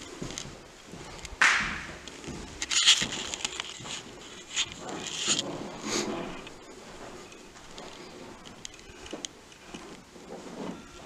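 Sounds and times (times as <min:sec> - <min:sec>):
footsteps on floor: 0:00.0 - 0:11.0.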